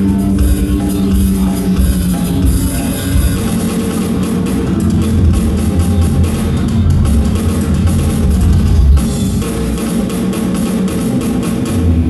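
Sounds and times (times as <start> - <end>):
bass guitar: 0.0 - 10.2
drum kit: 0.0 - 12.0.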